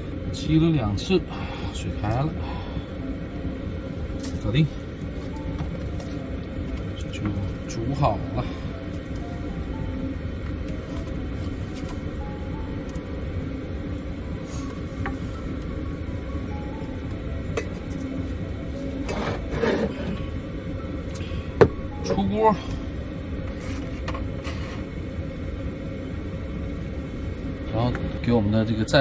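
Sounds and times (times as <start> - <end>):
soft background music: 0.0 - 29.0.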